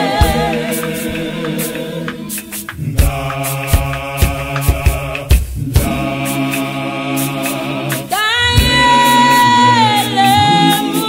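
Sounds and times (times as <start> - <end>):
gospel choir singing a cappella: 0.0 - 11.0
hand claps: 0.2 - 6.7, 7.4 - 8.1.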